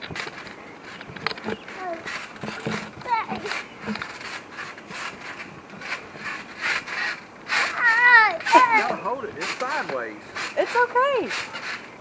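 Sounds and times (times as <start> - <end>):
children squealing and laughing: 7.6 - 9.0.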